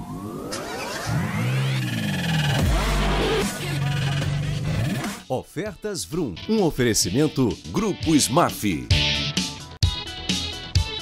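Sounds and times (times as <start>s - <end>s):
car engine revving: 0.0s - 5.2s.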